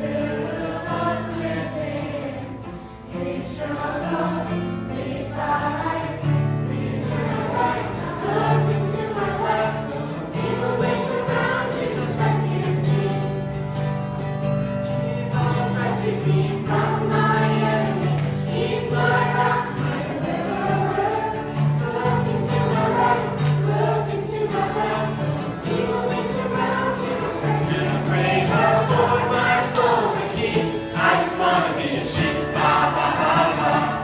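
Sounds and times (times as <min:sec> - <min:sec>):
children singing: 0:00.0 - 0:13.6, 0:15.1 - 0:34.0
guitar chords: 0:00.0 - 0:34.0.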